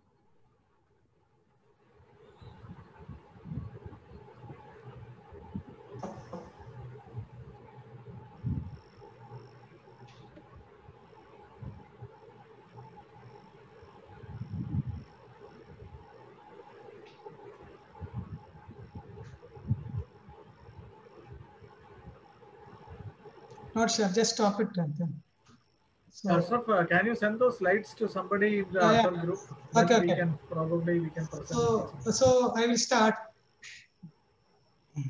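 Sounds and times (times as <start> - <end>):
steady low hum: 0.0 - 35.0
faint pulsing high tone: 1.9 - 35.0.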